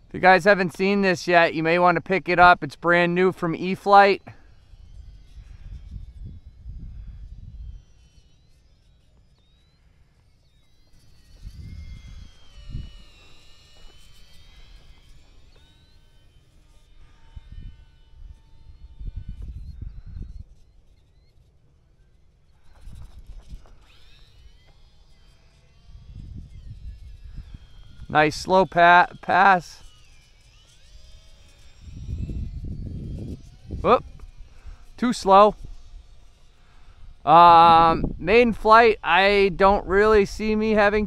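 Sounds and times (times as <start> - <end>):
distant electric motor whine: 0.0 - 41.0
wind buffeting microphone: 4.5 - 7.9, 11.3 - 13.3, 17.3 - 20.6, 25.9 - 28.9, 31.7 - 36.2, 36.8 - 41.0.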